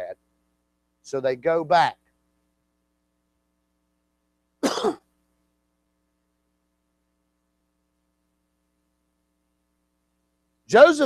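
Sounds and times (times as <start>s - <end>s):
man coughing: 4.6s - 5.0s.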